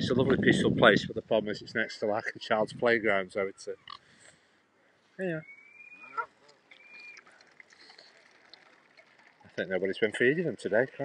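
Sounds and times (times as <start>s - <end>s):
waterfowl high calls: 5.4s - 9.6s
waterfowl honk: 5.8s - 7.2s.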